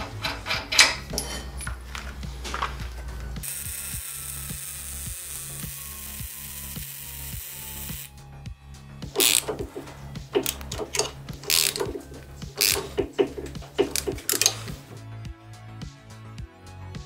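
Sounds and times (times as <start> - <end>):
metal parts knocking and clinking: 0.0 - 2.7, 9.2 - 15.0
low beat background music: 0.0 - 17.0
welding arc hissing: 3.4 - 8.1, 9.2 - 14.9.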